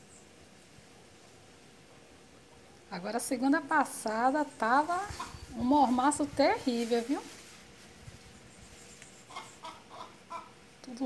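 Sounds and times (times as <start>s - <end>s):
chickens clucking: 5.1s - 5.5s, 9.2s - 10.6s.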